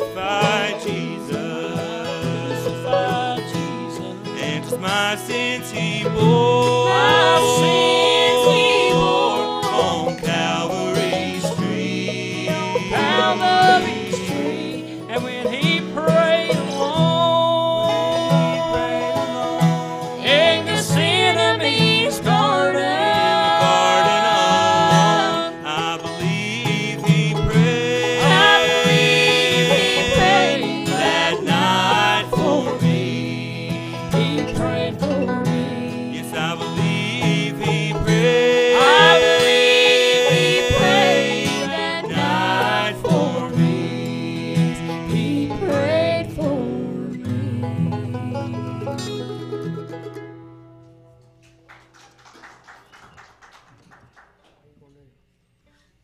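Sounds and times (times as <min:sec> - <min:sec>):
voices singing in harmony: 0:00.0 - 0:49.2
fiddle: 0:00.0 - 0:50.4
mandolin: 0:00.0 - 0:51.5.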